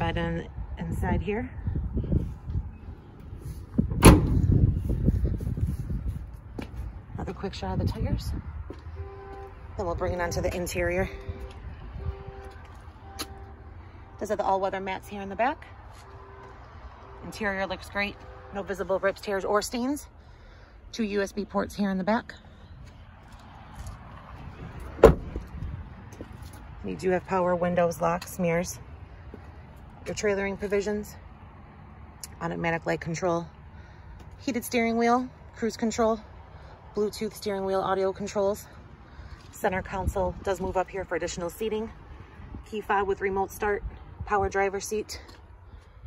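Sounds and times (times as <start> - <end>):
low wind rumble: 0.0 - 15.9, 16.6 - 32.8, 33.5 - 46.0
sharp slam: 3.9 - 4.5
truck door slamming shut: 3.9 - 4.6, 25.0 - 25.5.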